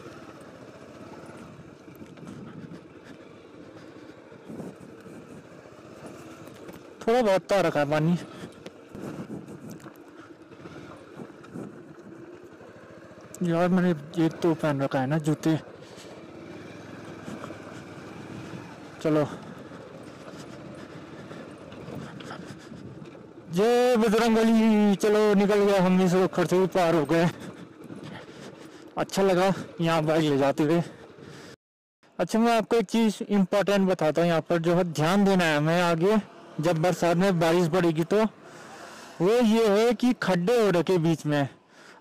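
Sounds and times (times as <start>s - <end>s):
scooter engine running: 0.0s - 31.6s, 34.1s - 42.0s.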